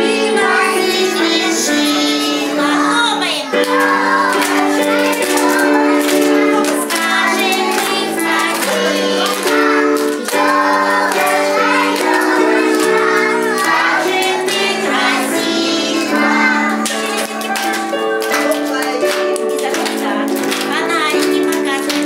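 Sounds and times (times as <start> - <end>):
children singing: 0.0 - 18.2.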